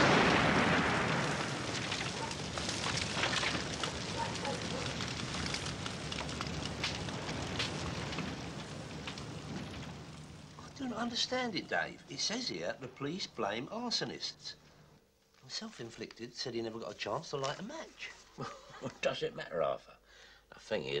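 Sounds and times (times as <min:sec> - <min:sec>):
fire pops: 0:00.0 - 0:13.3
fire crackling: 0:00.0 - 0:21.0.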